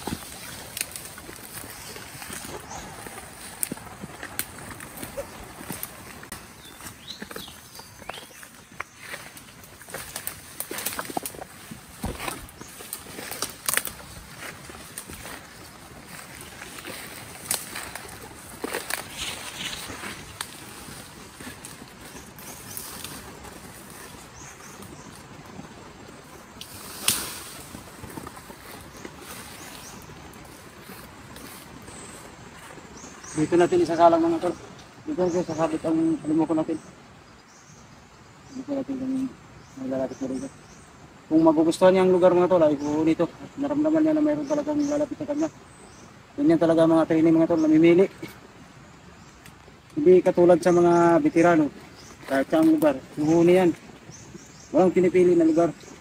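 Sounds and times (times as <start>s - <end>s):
twigs cracking: 0.0s - 35.8s, 51.6s - 54.9s
footsteps in undergrowth: 0.0s - 36.8s, 49.2s - 56.0s.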